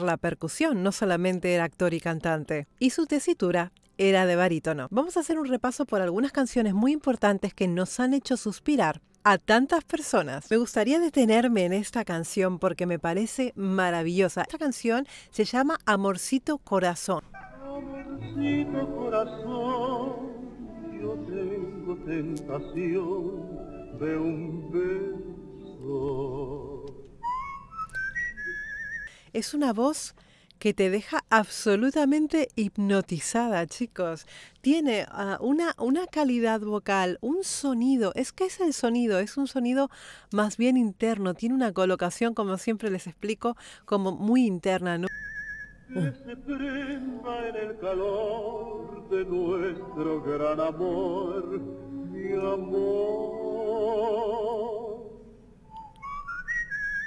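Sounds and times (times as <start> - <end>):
person whistling a tune: 27.2 - 29.1, 45.1 - 46.2, 55.7 - 57.0.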